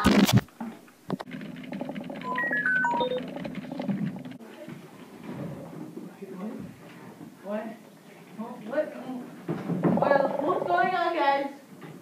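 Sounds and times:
short electronic beeps: 2.2 - 3.3.

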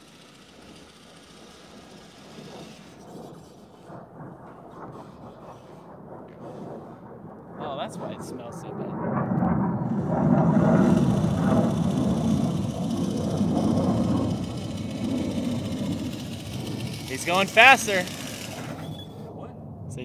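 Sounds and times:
electric reel mower cutting grass: 0.0 - 3.9, 9.9 - 19.2.

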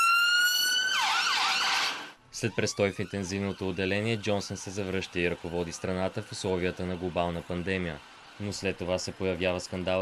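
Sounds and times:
ambulance siren: 0.0 - 8.1.

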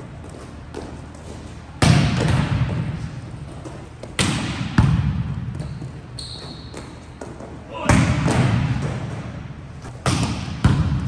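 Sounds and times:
volleyball being hit: 1.8 - 3.0, 4.1 - 5.6, 7.8 - 11.0
shoe squeaks on gym floor: 5.6 - 7.5.

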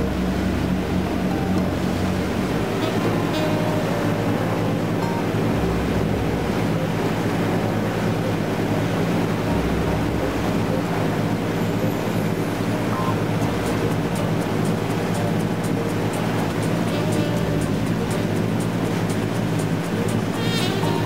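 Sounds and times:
boat engine droning: 0.0 - 21.0
rush of wind and water: 0.0 - 21.0.

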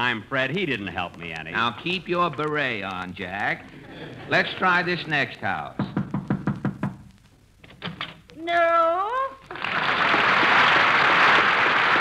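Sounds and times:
knocking on wooden door: 5.8 - 7.1.

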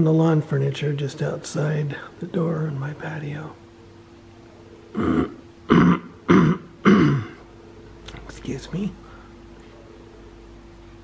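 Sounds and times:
man coughing: 5.0 - 7.4.

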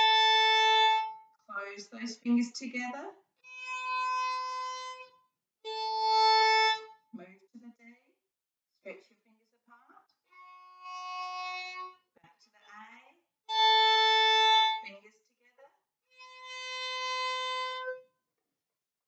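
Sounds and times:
violin bowing long notes: 0.0 - 1.2, 3.5 - 5.1, 5.7 - 6.9, 10.4 - 11.9, 13.5 - 14.9, 16.2 - 18.0.

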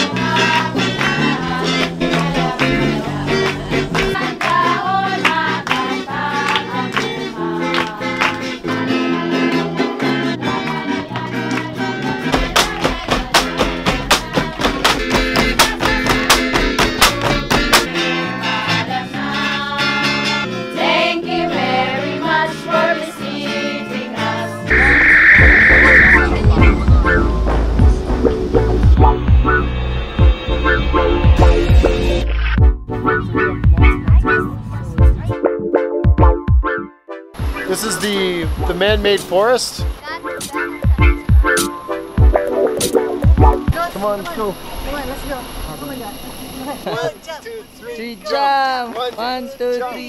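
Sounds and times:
acoustic guitars playing: 24.4 - 44.4
steady high tone: 24.7 - 31.6
low rumble: 24.7 - 31.8.

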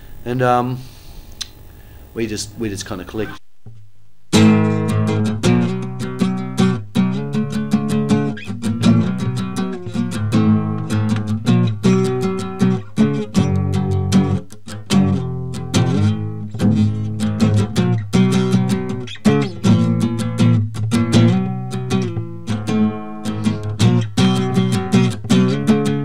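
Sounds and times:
guitar strumming chords: 4.3 - 26.0.

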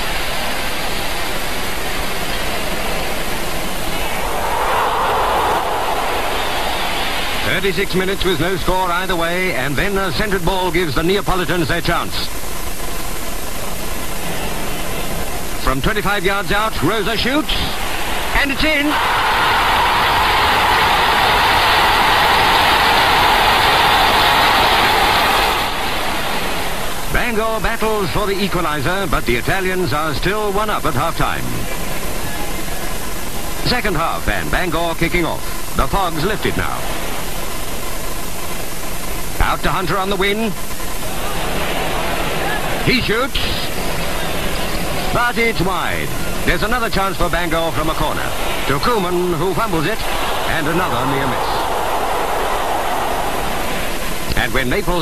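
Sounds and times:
steady rushing noise: 0.0 - 9.1, 17.6 - 27.2, 47.8 - 55.0
film soundtrack hiss: 0.0 - 55.0.

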